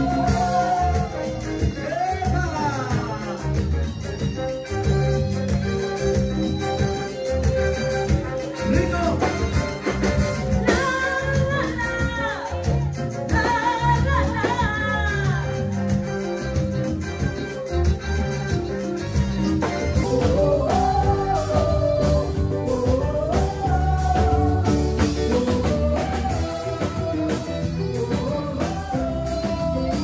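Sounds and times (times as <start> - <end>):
person singing lead: 0.0 - 3.5, 20.0 - 30.0
live latin band playing: 0.0 - 30.0.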